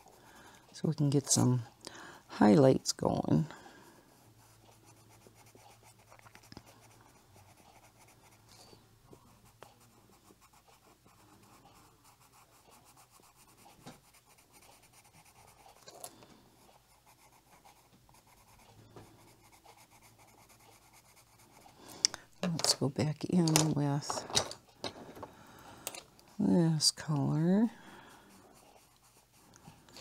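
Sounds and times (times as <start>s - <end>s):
pencil scratching on paper: 0.0s - 1.4s, 3.5s - 21.9s, 27.6s - 30.0s
pencil ticks on paper: 4.2s - 8.5s, 9.3s - 16.0s, 16.6s - 21.8s, 28.0s - 29.7s.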